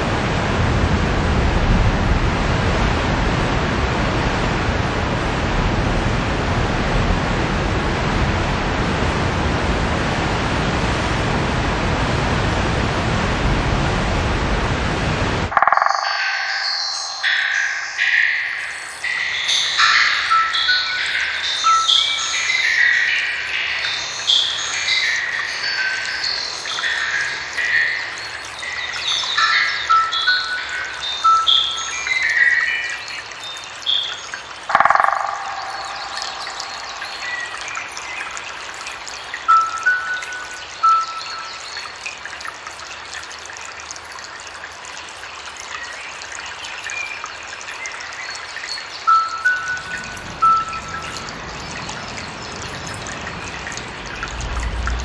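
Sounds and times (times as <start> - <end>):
electronic chirping tones: 15.5 - 18.0, 34.7 - 37.5
low rushing sound: 53.2 - 55.0.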